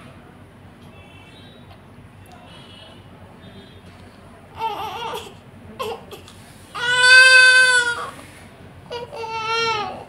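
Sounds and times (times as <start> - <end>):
newborn baby crying: 4.5 - 8.2, 8.9 - 10.0.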